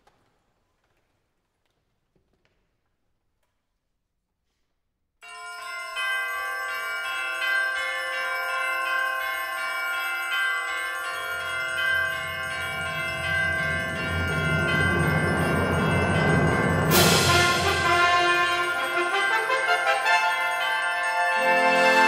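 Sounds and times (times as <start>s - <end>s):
bell-like mallet percussion: 5.2s - 22.0s
low rumble: 12.0s - 18.1s
concert band piece: 13.6s - 22.0s.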